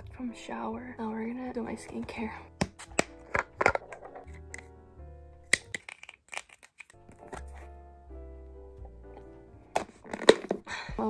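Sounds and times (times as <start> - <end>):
soft background music: 0.0 - 11.0
plastic containers clicking and knocking: 2.6 - 4.7, 9.7 - 10.7.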